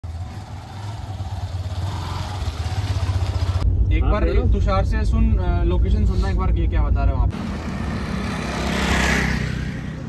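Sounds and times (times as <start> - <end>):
motor scooter engine running: 0.1 - 3.6.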